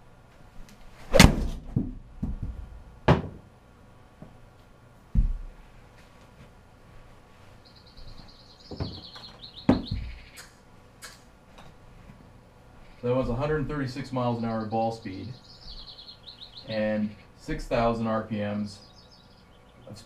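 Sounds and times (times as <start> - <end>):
golf club striking ball: 1.1 - 1.7
ball slapping into screen: 1.1 - 2.4
ball thudding and bouncing: 1.1 - 3.4, 5.1 - 5.5.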